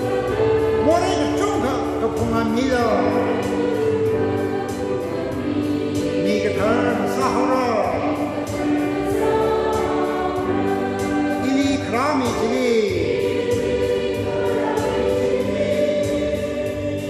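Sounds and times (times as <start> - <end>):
voices singing a hymn: 0.0 - 17.0.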